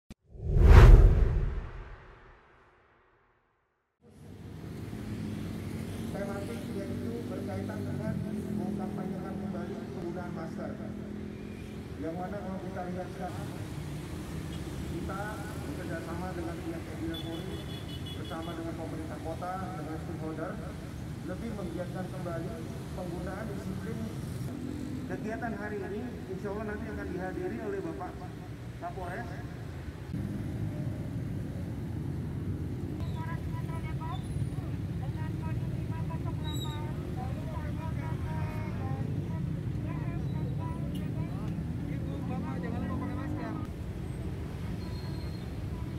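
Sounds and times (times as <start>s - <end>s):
road traffic rumble: 4.0s - 45.9s.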